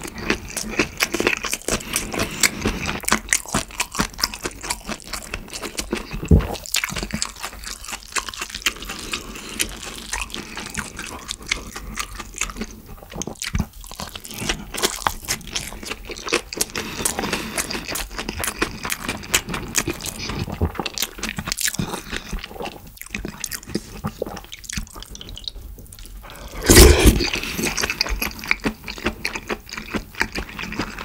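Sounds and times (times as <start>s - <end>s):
close chewing with wet mouth clicks: 0.0s - 31.0s.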